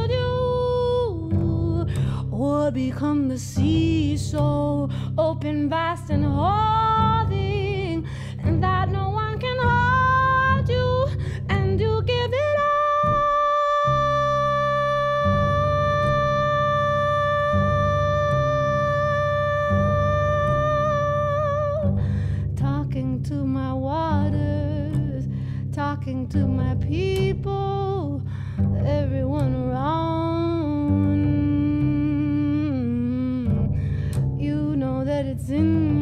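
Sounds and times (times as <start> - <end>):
plucked upright bass: 0.0 - 36.0
woman singing: 0.0 - 36.0.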